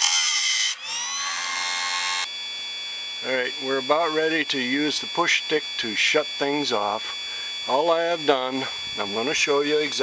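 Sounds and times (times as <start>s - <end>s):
grinder motor whining: 0.0s - 2.3s.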